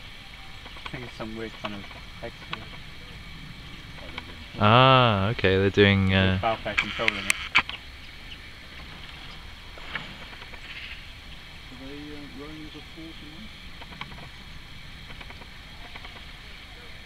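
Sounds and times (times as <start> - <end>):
low motor hum: 0.0 - 6.8, 7.4 - 17.0.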